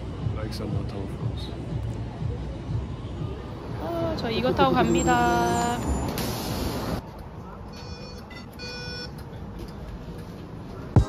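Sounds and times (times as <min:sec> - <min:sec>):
bus rumble: 0:00.0 - 0:11.0
short electronic beeps: 0:07.7 - 0:09.2.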